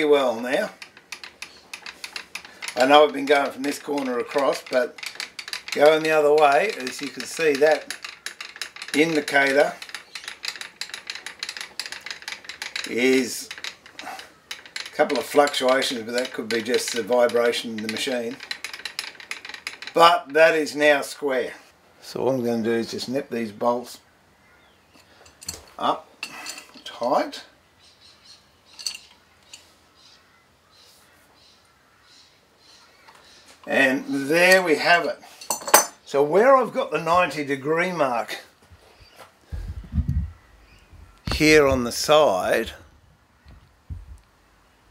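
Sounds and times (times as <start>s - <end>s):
milling machine feed clicking: 0.6s - 20.1s.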